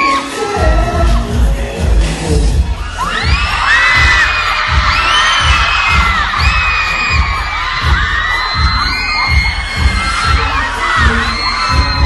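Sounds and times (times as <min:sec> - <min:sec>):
crowd screaming: 0:00.0 - 0:00.6, 0:02.6 - 0:12.0
pop dance track over sound system: 0:00.0 - 0:12.0.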